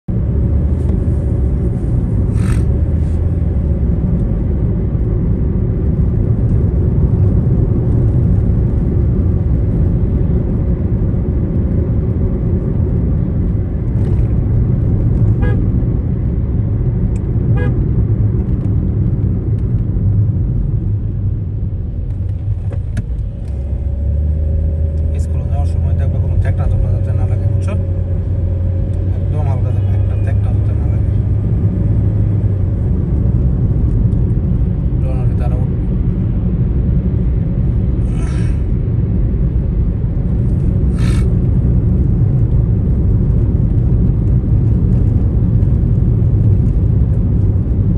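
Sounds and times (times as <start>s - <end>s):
car engine and tyre rumble: 0.0s - 47.9s.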